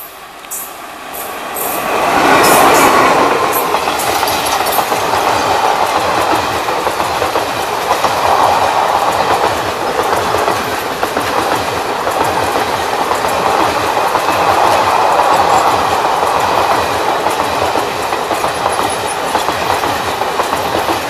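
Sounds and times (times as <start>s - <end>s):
train passing with loud rumble: 0.0s - 21.0s
wheels clattering on rails: 1.2s - 21.0s.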